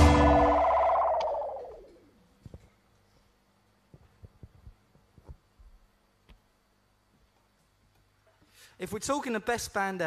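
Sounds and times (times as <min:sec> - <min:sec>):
live band chord sliding down: 0:00.0 - 0:01.9.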